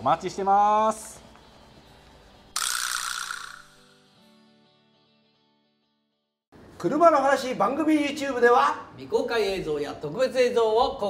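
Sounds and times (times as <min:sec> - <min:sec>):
faint background music: 0:00.0 - 0:05.1, 0:06.6 - 0:11.0.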